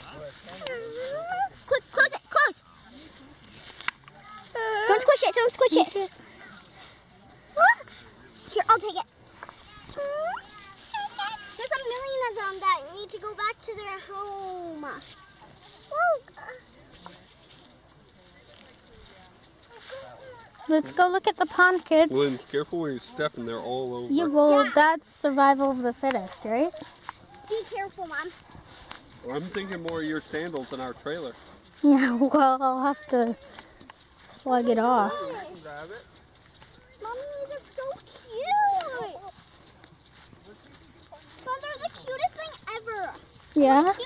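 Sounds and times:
hands rustling in dry grass: 0.0 - 16.4, 24.6 - 36.7.

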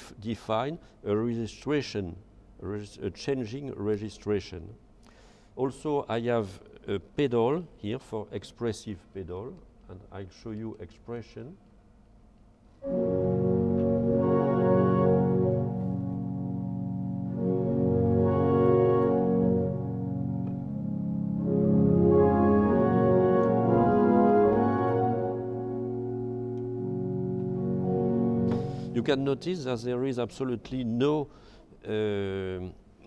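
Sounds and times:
pipe organ sustained chords: 12.8 - 31.5.

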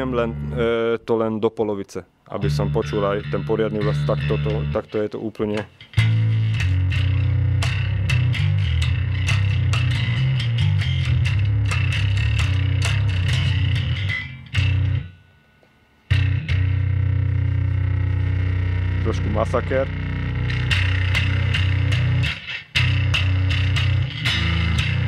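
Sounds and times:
fuzz electric bass notes: 0.0 - 0.9, 2.4 - 25.0.

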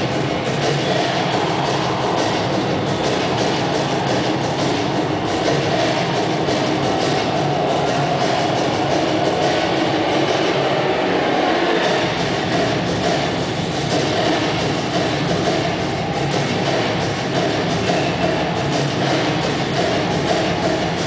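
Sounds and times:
show soundtrack over arena speakers: 0.0 - 21.0.

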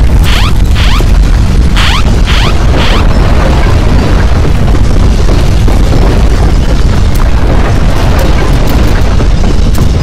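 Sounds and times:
deep rumbling of earthquake shaking: 0.0 - 10.0
alarm with rising tones: 1.8 - 3.1.

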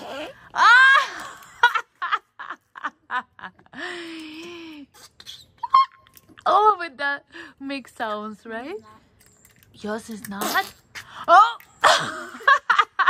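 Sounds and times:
noise putty fart noise: 10.4 - 11.0.

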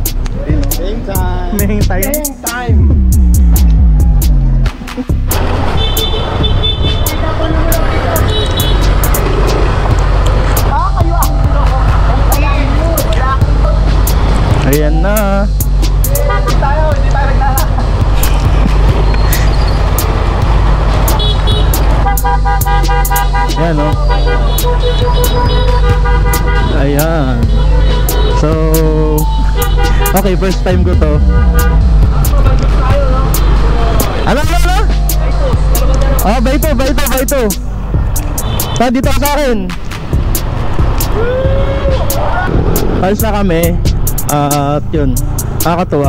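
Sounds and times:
music: 0.0 - 46.0
motorcycle engines: 2.4 - 46.0
people shouting: 3.7 - 4.6, 41.1 - 42.8
horns honking: 5.4 - 14.2, 16.0 - 20.2, 20.9 - 39.5.

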